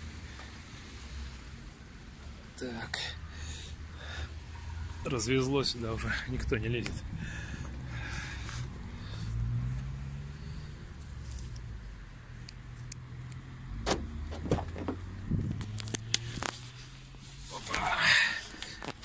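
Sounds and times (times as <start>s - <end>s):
engine humming: 0.0s - 19.0s
car door unlatched and opened: 13.8s - 15.8s.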